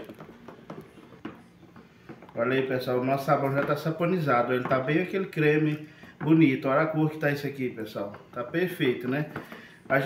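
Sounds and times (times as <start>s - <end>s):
wooden spoon stirring thick batter: 0.0s - 10.0s.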